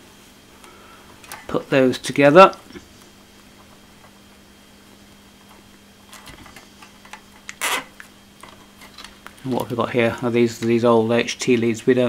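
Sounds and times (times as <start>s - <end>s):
faint steady hum: 0.0s - 12.0s
wires being handled: 5.1s - 11.7s
cable tie zip: 7.5s - 8.0s.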